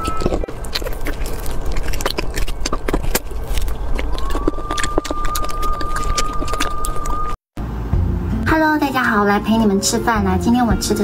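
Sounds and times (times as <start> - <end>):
wet mouth clicks eating: 0.0 - 7.4.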